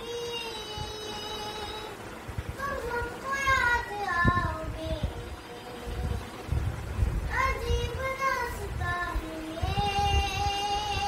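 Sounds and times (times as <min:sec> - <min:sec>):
girl singing a long note: 0:00.0 - 0:06.6, 0:07.2 - 0:11.0.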